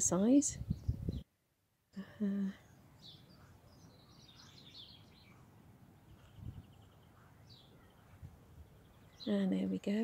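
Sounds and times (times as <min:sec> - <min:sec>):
faint bird chirps: 0:02.0 - 0:10.0.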